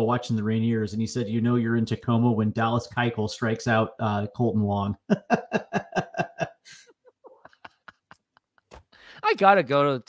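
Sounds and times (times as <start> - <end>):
man laughing: 5.0 - 8.9.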